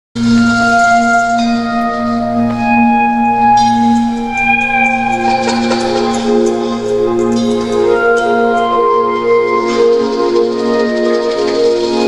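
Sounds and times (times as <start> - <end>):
ringing bell-like tones: 0.2 - 12.0
steady low drone: 0.2 - 12.0.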